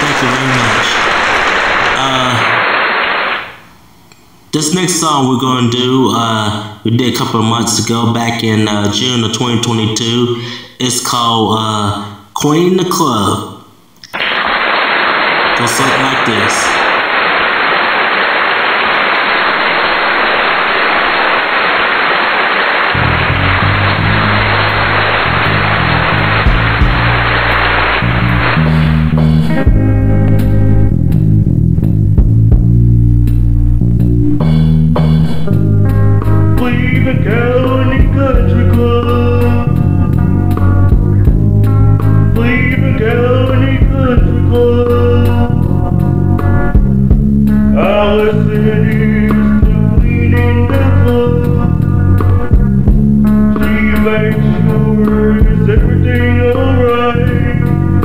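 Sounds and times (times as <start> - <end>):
steady hiss: 0.0 - 4.5, 14.0 - 29.2
band song with electric guitar: 22.7 - 58.0
bass line: 23.0 - 58.0
person singing: 36.5 - 40.2, 42.2 - 45.7, 47.7 - 51.8, 53.5 - 58.0.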